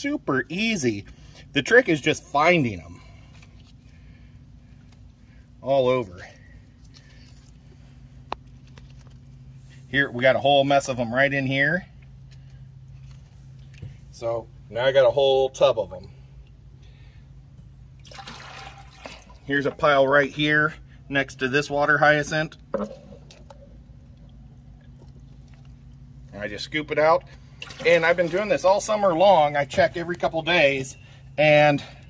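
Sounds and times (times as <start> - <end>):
low steady hum: 0.0 - 32.0
water sloshing and dripping: 17.9 - 20.0, 22.7 - 30.3
water splashing and pouring: 18.0 - 19.5, 27.5 - 29.0.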